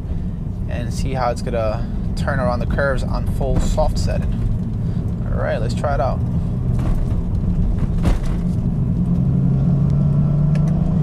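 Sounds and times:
car engine pulling: 0.0s - 11.0s
road rumble: 0.0s - 11.0s.

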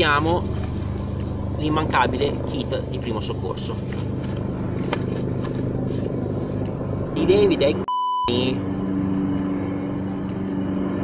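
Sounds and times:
low rumble with hum: 0.0s - 11.0s.

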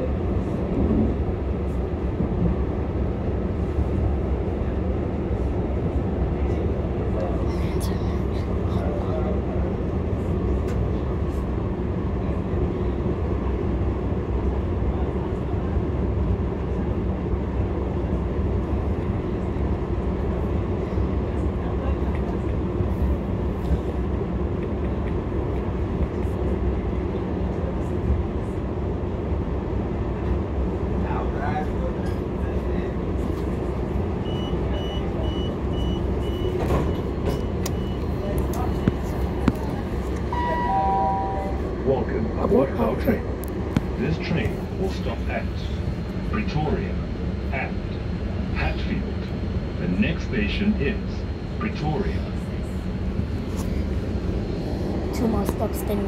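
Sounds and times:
train rumble inside carriage: 0.0s - 56.0s.

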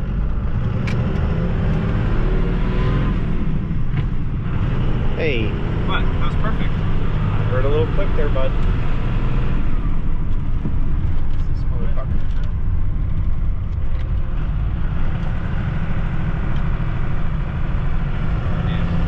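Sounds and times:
diesel engine droning: 0.0s - 19.0s.

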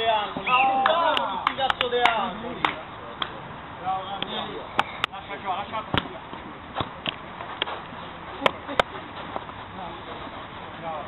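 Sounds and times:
distant players shouting: 0.0s - 2.4s.

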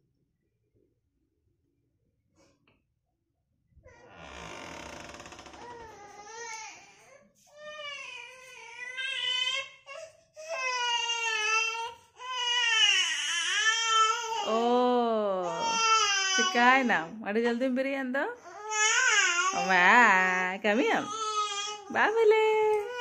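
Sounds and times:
infant crying: 5.6s - 14.6s, 15.4s - 16.8s, 18.4s - 19.8s, 21.0s - 22.0s.

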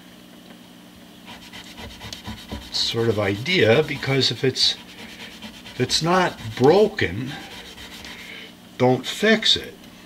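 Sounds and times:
low steady hum: 0.0s - 10.0s
hands rubbing bass fingerboard: 1.3s - 8.2s.

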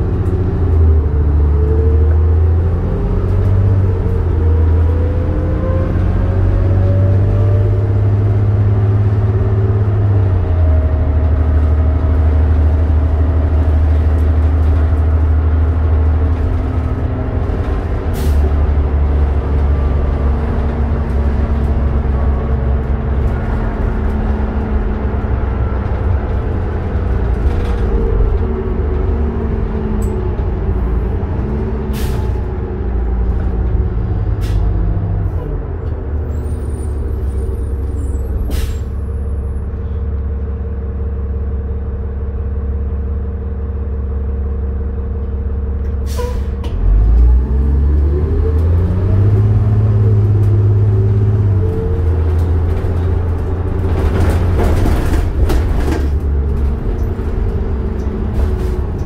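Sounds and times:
bus diesel engine: 0.0s - 59.0s
air brake hiss: 38.5s - 38.9s, 46.0s - 46.6s.

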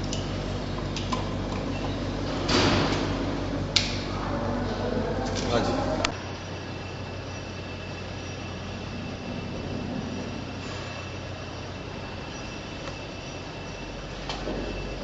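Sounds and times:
faint high whine: 0.0s - 15.0s
steady mechanical hum: 0.0s - 15.0s.

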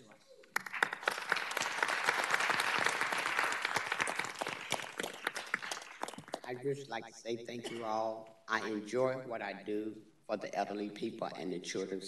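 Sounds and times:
audience applauding: 0.5s - 6.5s.

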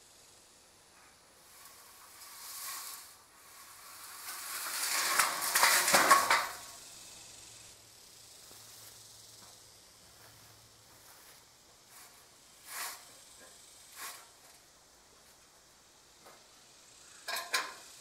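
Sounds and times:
pipe scraping against soil: 1.4s - 6.8s, 12.0s - 13.2s, 13.9s - 14.4s
pipe clattering: 4.0s - 6.8s.

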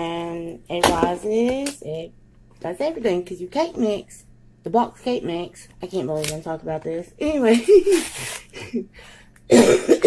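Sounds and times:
man coughing: 9.5s - 10.0s.

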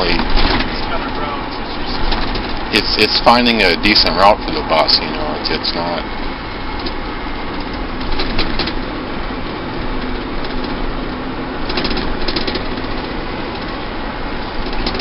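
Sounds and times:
vehicle engine and road noise: 0.0s - 15.0s.

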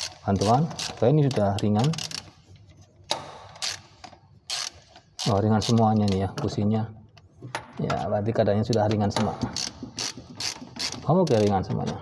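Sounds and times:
ratchet wrench clicking: 0.0s - 2.4s, 3.6s - 6.2s, 9.5s - 11.6s.

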